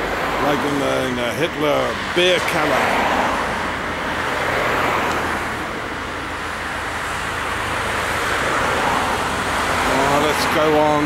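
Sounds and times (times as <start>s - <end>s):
cars driving past: 0.0s - 11.0s.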